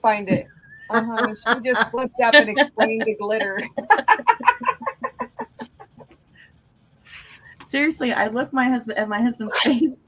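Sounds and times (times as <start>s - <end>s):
woman cackling laughter: 0.9s - 6.1s.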